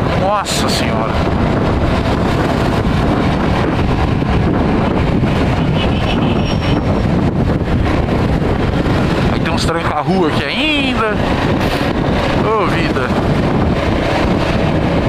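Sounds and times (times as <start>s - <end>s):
wind rush on microphone: 0.0s - 15.0s.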